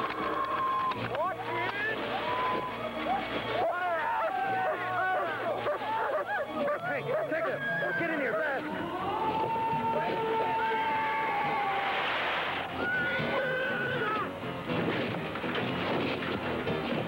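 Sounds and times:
dramatic film soundtrack: 0.0 - 17.0
wavering cries: 2.1 - 11.8, 12.7 - 14.3.

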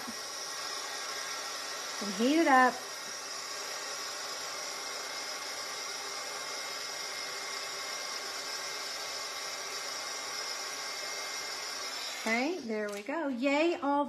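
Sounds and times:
heat tool blowing hot air: 0.0 - 13.1.

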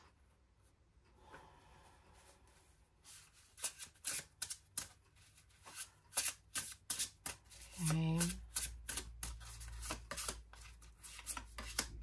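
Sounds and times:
cards sliding while shuffling: 5.6 - 12.0.

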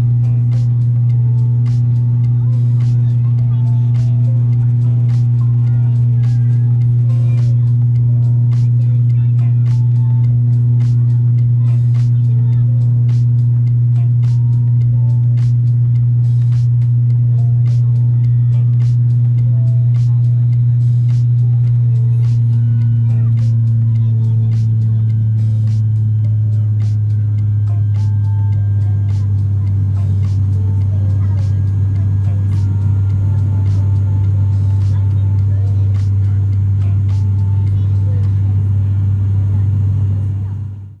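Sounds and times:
propeller plane cabin drone: 0.0 - 41.0.

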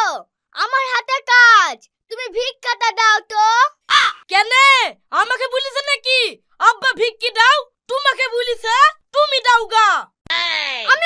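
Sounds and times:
girl shouting shrilly: 3.4 - 4.9, 8.7 - 11.0.

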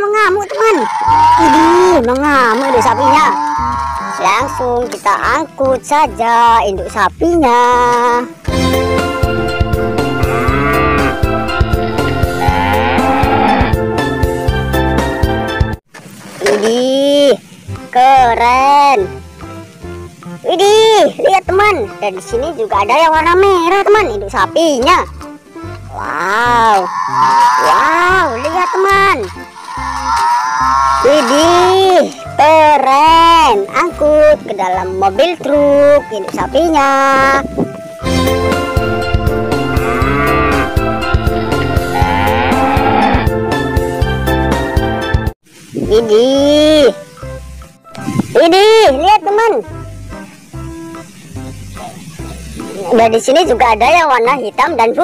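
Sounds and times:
background music: 0.0 - 15.8, 17.4 - 55.0
cow mooing: 0.5 - 4.8, 9.4 - 13.8, 26.0 - 31.5, 38.8 - 43.4
drawn-out vocal exclamations: 0.5 - 4.8
background music with steady beat: 8.3 - 15.8, 37.5 - 45.3.

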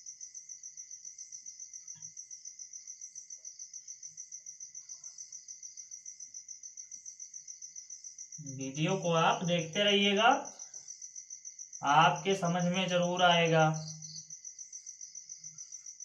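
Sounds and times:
cricket chirping: 0.0 - 16.0.

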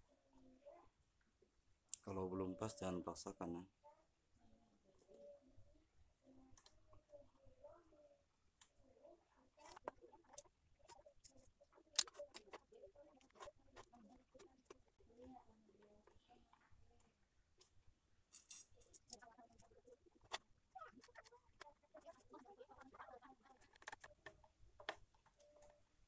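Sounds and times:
iron housing clicks and scrapes: 18.4 - 18.8.

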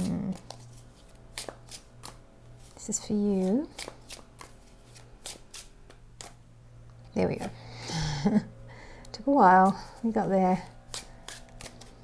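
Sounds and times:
cards shuffling clicks: 0.0 - 2.8, 3.5 - 6.4, 10.9 - 12.0.

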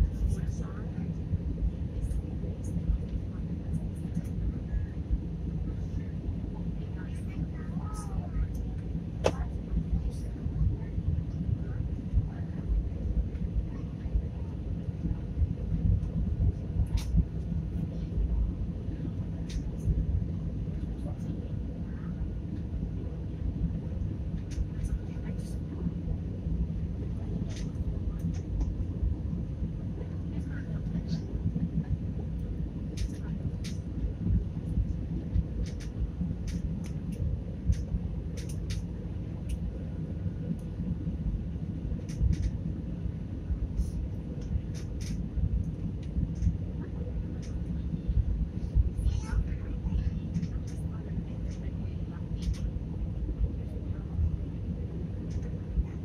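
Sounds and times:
airliner engines and airflow rumble: 0.0 - 56.0
faint clicks: 33.0 - 33.8, 35.3 - 38.9, 52.4 - 52.7.

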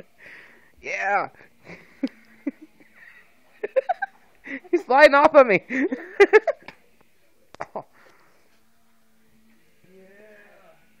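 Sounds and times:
wordless vocal sound: 7.8 - 11.0.

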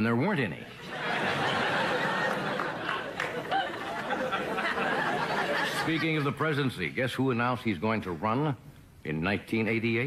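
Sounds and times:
audience laughing: 0.8 - 6.6.

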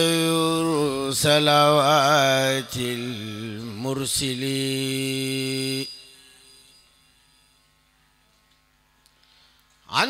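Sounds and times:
man chanting into microphone: 0.0 - 5.9.

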